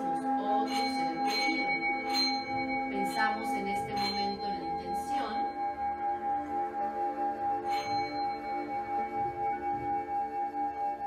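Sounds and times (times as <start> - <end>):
singing bowl ringing: 0.0 - 11.0.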